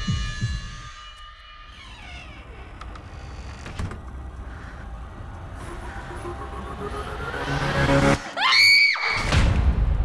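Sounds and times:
tense horror music: 0:00.0 - 0:10.0
loud high scream: 0:08.4 - 0:09.3.

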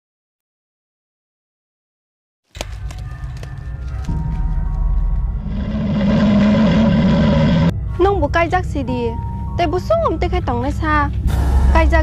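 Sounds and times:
low rumbling drone: 0:03.3 - 0:12.0.

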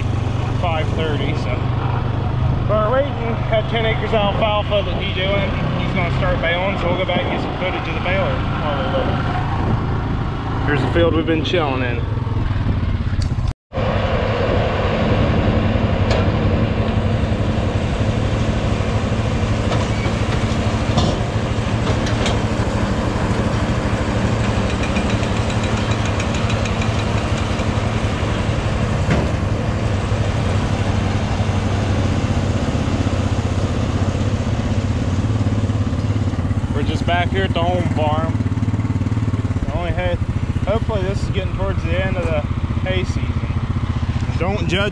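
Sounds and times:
vehicle engine running: 0:00.0 - 0:44.9.

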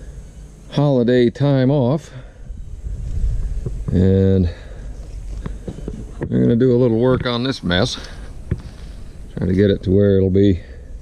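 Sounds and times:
wind rumble on microphone: 0:02.4 - 0:07.6.

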